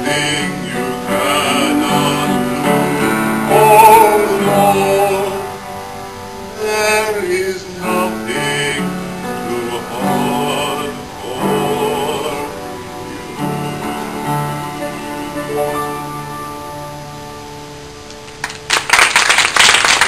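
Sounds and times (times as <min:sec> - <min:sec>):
people singing: 0:00.0 - 0:05.8, 0:06.6 - 0:16.4
instrumental accompaniment: 0:00.0 - 0:18.8.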